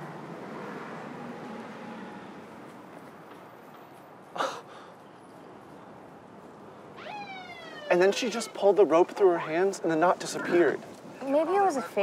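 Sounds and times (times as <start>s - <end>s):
police siren wailing: 7.0s - 8.6s.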